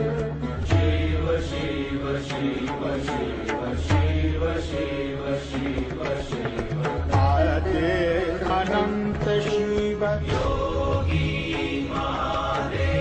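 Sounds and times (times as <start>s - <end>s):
chant-like melody: 0.0s - 13.0s
drum strikes: 0.0s - 13.0s.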